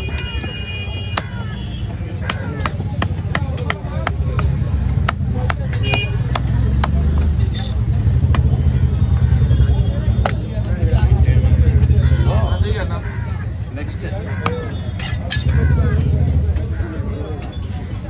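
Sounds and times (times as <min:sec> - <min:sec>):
knife chopping on wooden block: 0:02.1 - 0:07.5.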